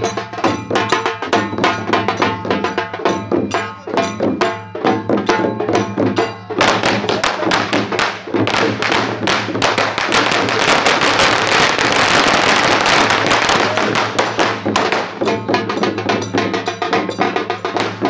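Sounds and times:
drums beaten fast: 0.0s - 18.0s
metal cymbals clashing: 13.7s - 18.0s.

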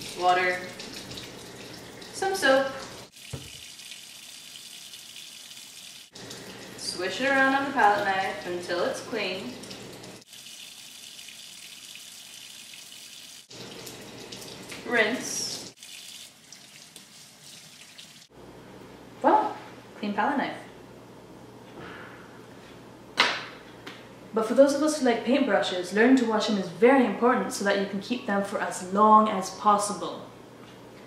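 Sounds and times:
water running from faucet: 0.0s - 18.3s
tap running into sink: 2.8s - 3.8s.

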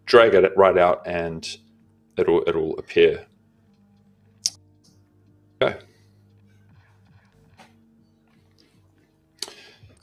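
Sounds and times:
faint background music: 0.0s - 10.0s
man speaking: 5.6s - 5.9s.

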